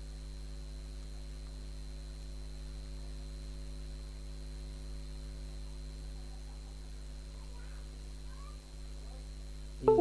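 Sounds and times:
electrical mains hum: 0.0 - 10.0
high steady whine: 9.7 - 10.0.

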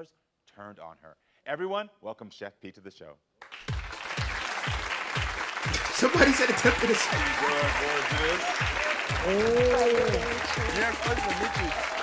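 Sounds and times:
studio audience applauding: 3.4 - 12.0
show music with bass-drum beat: 3.7 - 12.0.

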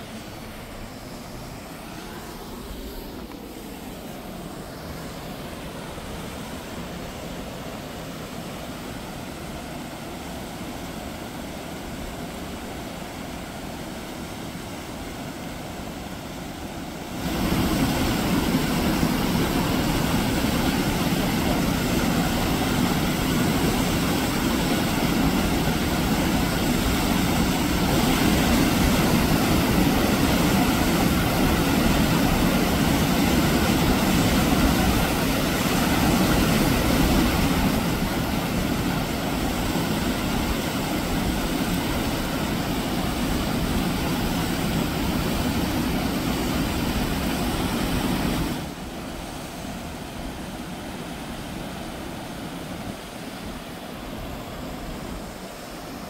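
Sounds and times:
waterfall rushing into pool: 0.0 - 56.0.

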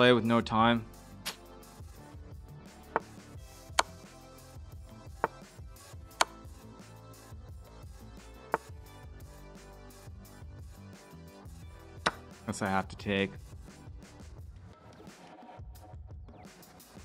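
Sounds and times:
soft background music: 0.0 - 17.0
sharp clicks of chess moves: 3.8 - 4.0, 12.0 - 12.2.

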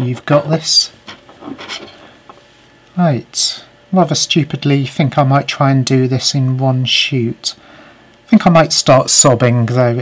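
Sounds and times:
plastic parts rubbing and scraping: 1.1 - 2.0.

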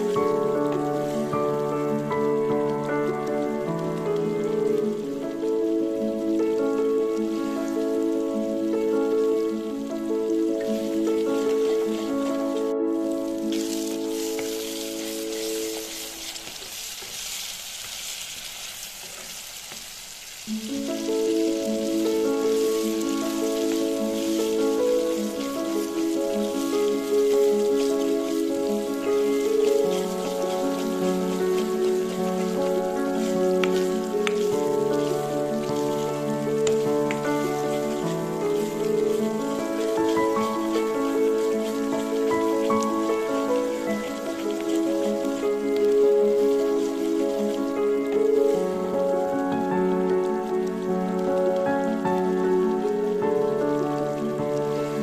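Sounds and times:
instrumental music: 0.0 - 16.9, 20.5 - 55.0
paste sizzling in hot oil: 0.0 - 55.0
spatula stirring in a pan: 13.5 - 48.8.

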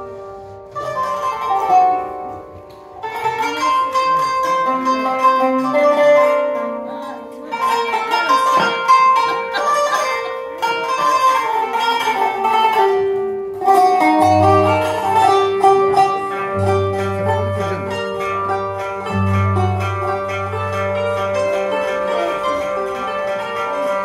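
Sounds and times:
frame drum: 0.0 - 24.0
qanun plucking a quick melody: 0.0 - 24.0
violin: 0.0 - 24.0
held low notes: 13.6 - 24.0.

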